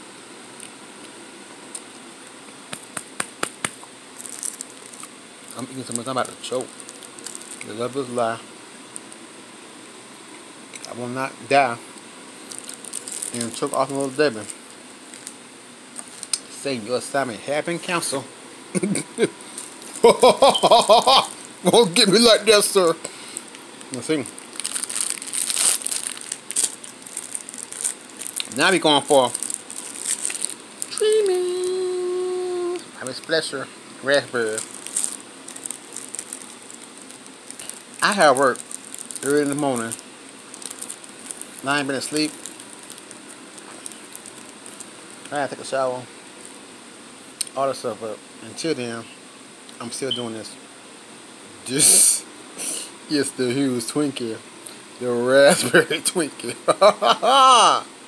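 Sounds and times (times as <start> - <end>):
background hiss: 0.0 - 58.0
plastic wrapper crinkling: 2.7 - 8.2, 12.4 - 16.4, 19.6 - 33.5, 34.1 - 45.4.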